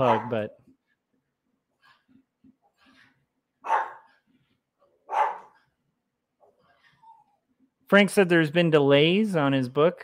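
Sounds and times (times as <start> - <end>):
dog barking: 0.0 - 0.5, 3.6 - 4.2, 5.0 - 5.6.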